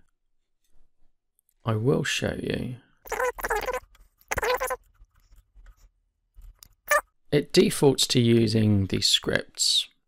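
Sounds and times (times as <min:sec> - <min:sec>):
fast-forwarded garbled speech: 0:03.1 - 0:04.8.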